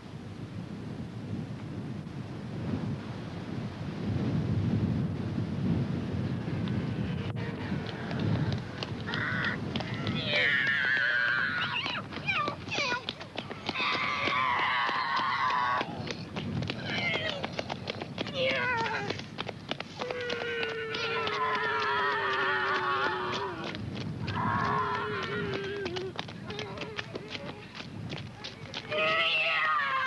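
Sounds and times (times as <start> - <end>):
boys imitating aircraft engines: 19.9 - 23.7, 24.3 - 27.0.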